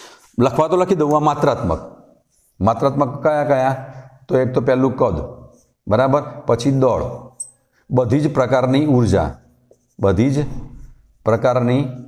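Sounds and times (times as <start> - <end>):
man speaking: 0.4 - 9.4, 10.0 - 12.0
marker writing on whiteboard: 9.5 - 11.2.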